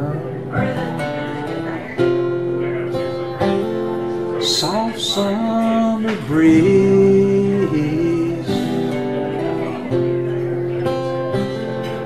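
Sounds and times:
acoustic guitar picking chords: 0.0s - 12.0s.

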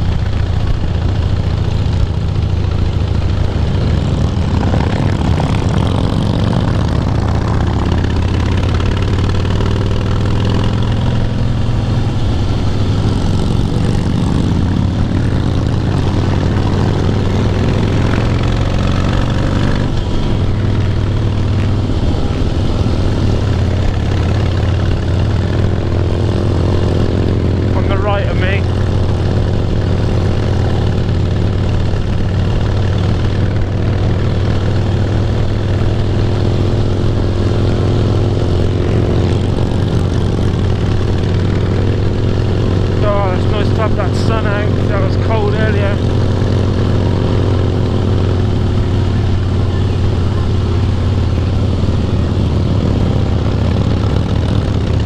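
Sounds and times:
motorcycle engine cruising: 0.0s - 55.0s.

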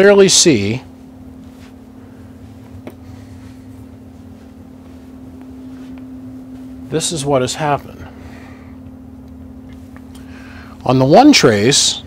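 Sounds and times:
low hum with rumble: 0.0s - 12.0s.

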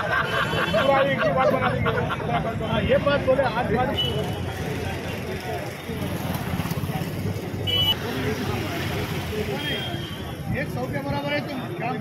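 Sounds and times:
low rumble of traffic: 0.0s - 12.0s
men talking: 0.0s - 12.0s
motorcycle passing: 3.8s - 9.7s.

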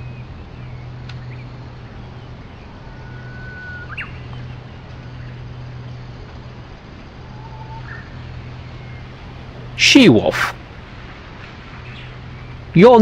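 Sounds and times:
low hum: 0.0s - 12.8s
background hiss: 8.2s - 11.8s.

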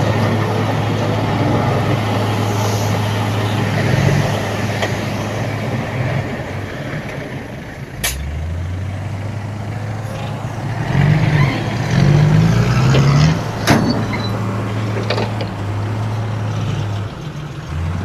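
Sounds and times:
bulldozer diesel engine under load: 0.0s - 18.0s
dump truck engine running: 0.0s - 18.0s.

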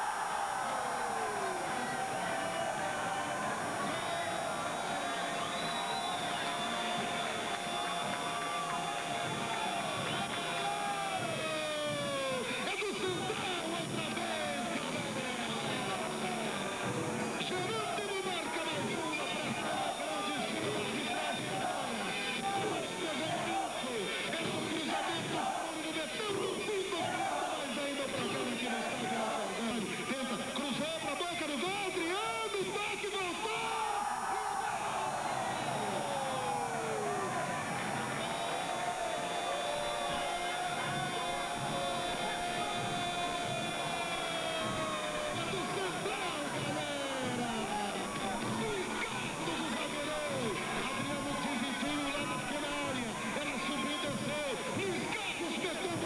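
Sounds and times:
crowd noise: 0.0s - 56.0s
overlapping voices: 0.0s - 56.0s
music: 1.2s - 33.4s, 34.9s - 56.0s.

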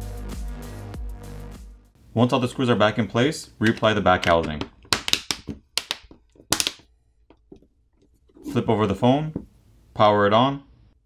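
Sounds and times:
plastic cover snapping on: 4.8s - 6.8s.

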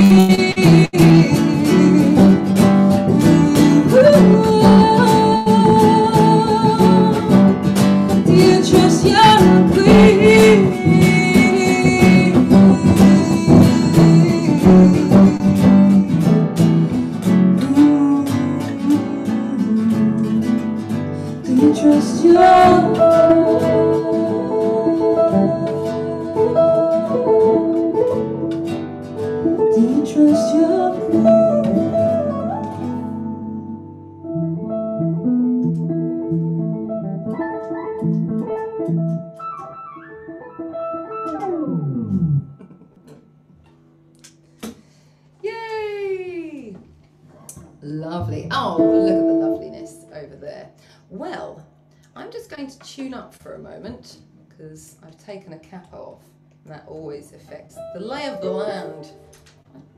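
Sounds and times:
woman singing: 0.0s - 28.7s, 29.5s - 34.0s, 48.2s - 50.6s
electric guitar: 0.0s - 51.0s
acoustic guitar: 0.0s - 54.2s, 54.8s - 59.9s.

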